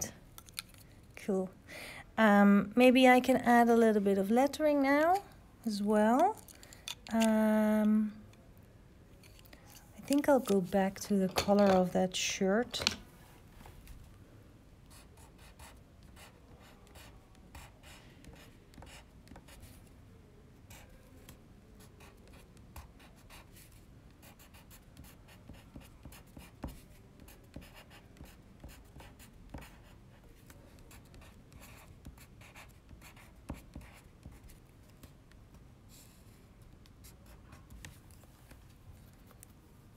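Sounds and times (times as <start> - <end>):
pencil scratching on paper: 14.9 - 19.8, 22.0 - 34.6.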